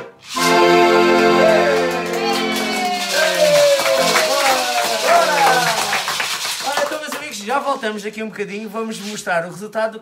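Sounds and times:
maracas shaking: 0.0s - 8.2s
group clapping: 0.8s - 7.8s.

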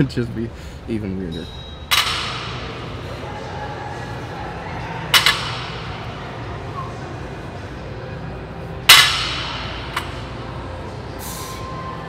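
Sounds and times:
low gym hum: 0.0s - 12.0s.

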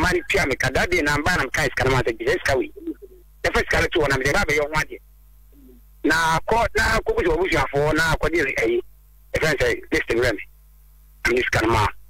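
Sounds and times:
person talking on radio: 11.3s - 12.0s.

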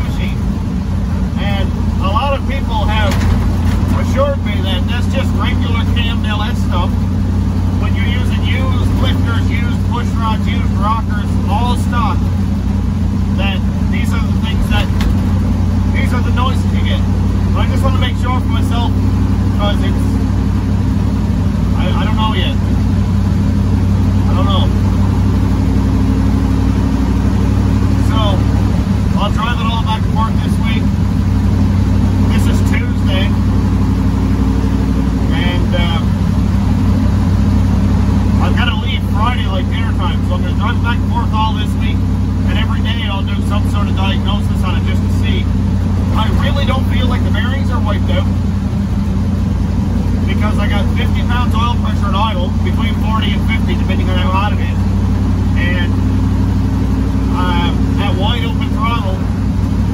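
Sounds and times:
man talking: 0.0s - 0.6s, 1.3s - 7.0s, 7.7s - 12.3s, 13.3s - 15.1s, 15.9s - 20.2s, 21.7s - 22.7s, 24.2s - 24.8s, 28.0s - 30.9s, 32.2s - 33.4s, 35.2s - 36.2s, 38.3s - 48.4s, 50.2s - 54.9s, 55.5s - 56.0s, 57.2s - 59.3s
truck engine droning: 0.0s - 59.9s.

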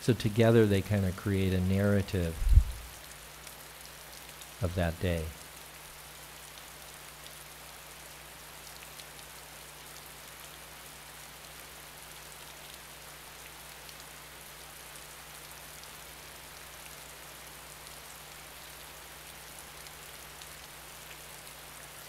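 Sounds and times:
faint hiss: 0.0s - 22.0s
low electrical hum: 0.0s - 22.0s.

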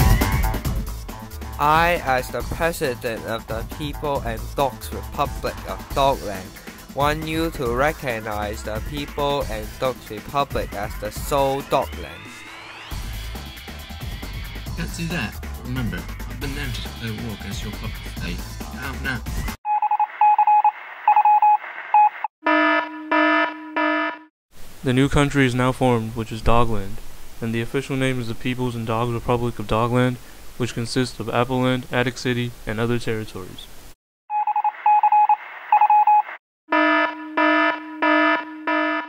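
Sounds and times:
pulsed electronic beeps: 34.3s - 39.0s.

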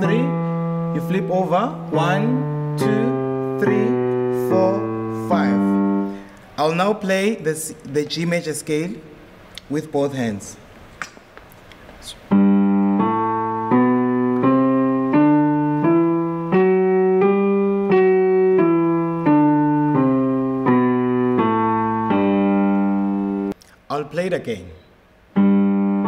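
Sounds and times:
piano scale: 0.0s - 7.4s, 12.2s - 23.6s, 25.3s - 26.0s.

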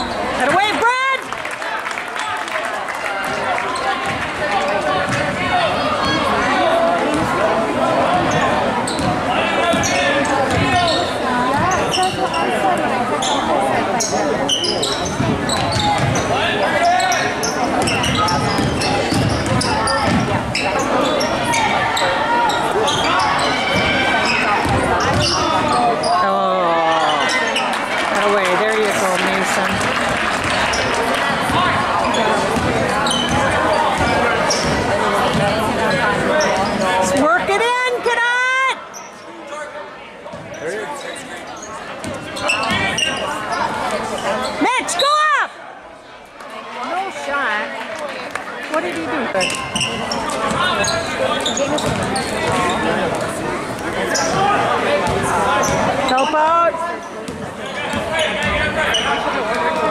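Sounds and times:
spectators talking and shouting: 0.0s - 59.9s
sneakers squeaking on floor: 8.1s - 26.2s, 27.0s - 27.8s, 30.4s - 37.2s, 38.8s - 39.4s, 40.3s - 45.1s, 49.0s - 59.9s.

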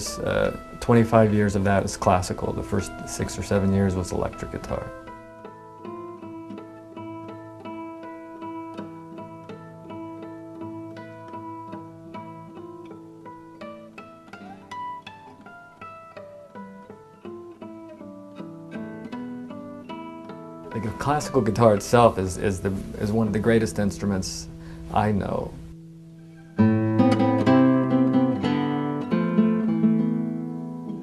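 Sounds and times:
fingerpicked classical guitar: 0.0s - 31.0s.

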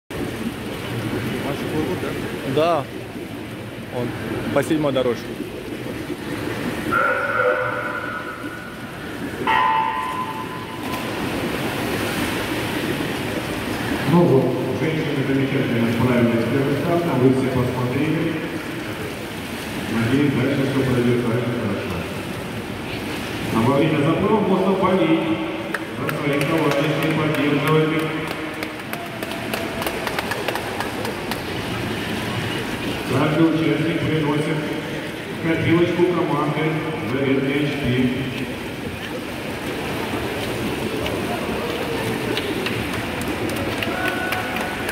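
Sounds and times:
water splashing in pool hall: 0.1s - 44.9s.

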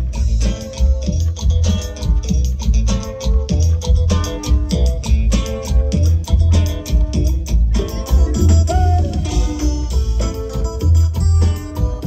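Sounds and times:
heavy bass line: 0.0s - 12.0s
live cumbia band playing: 0.0s - 12.0s.

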